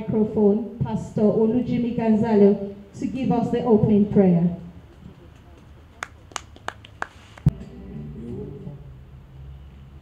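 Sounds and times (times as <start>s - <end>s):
low voice humming: 7.6s - 8.9s.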